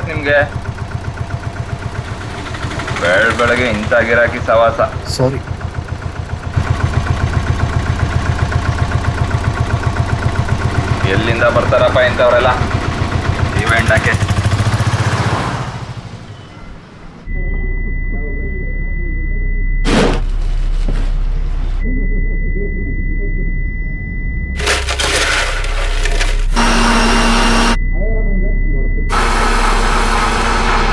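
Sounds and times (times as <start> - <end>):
auto-rickshaw engine idling: 0.0 - 19.4, 29.0 - 30.9
high-pitched ringing tone: 16.5 - 19.8, 21.8 - 25.3, 26.5 - 30.9.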